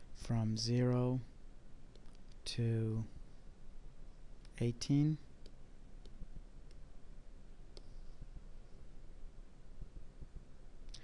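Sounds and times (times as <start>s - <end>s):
faint computer mouse clicks: 1.9s - 2.4s, 7.7s - 8.0s.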